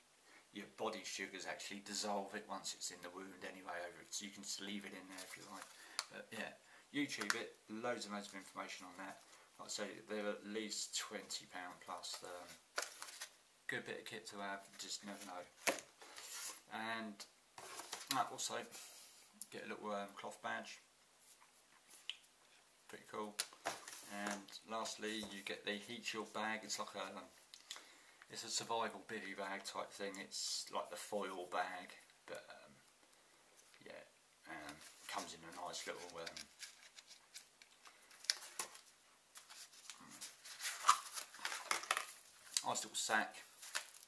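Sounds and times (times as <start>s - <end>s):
cardboard and nylon rustling: 12.0s - 13.4s, 34.7s - 44.0s.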